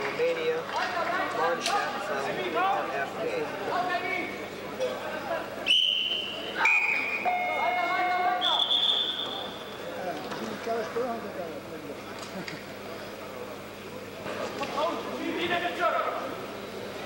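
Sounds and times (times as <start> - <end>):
crowd chatter and shouting: 0.0 - 17.0
whistle blasts: 5.6 - 9.6.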